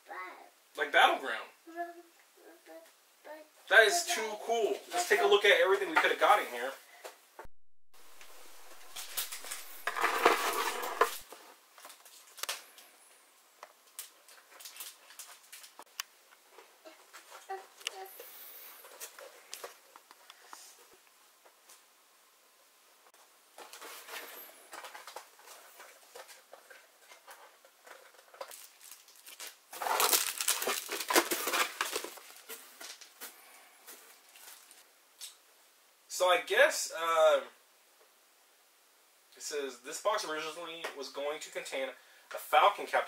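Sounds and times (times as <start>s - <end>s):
paper rustling: 8.2s - 12.6s, 23.6s - 33.2s
cardboard and plastic rustling: 8.2s - 12.8s, 13.8s - 15.9s, 23.5s - 34.8s.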